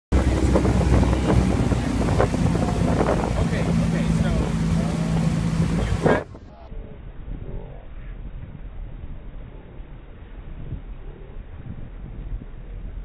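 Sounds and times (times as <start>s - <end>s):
outboard motor running: 0.1s - 6.4s
wind buffeting microphone: 0.1s - 13.0s.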